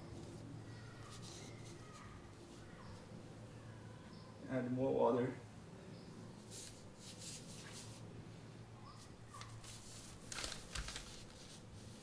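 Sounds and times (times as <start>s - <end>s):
brush swishing on paper: 6.4s - 8.1s.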